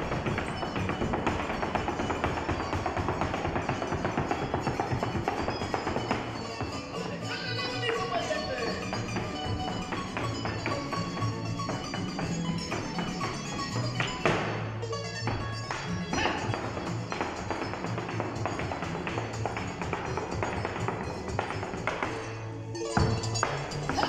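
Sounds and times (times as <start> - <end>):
boot heels tapping on wooden stage: 0.0 - 24.0
folk music playing: 0.0 - 24.0.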